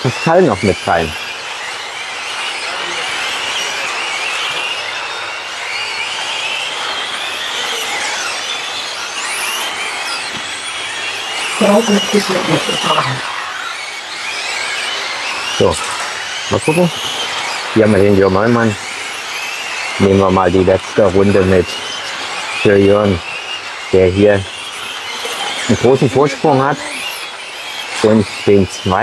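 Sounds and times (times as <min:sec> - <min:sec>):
rc cars electric motors whining: 0:00.0 - 0:29.0.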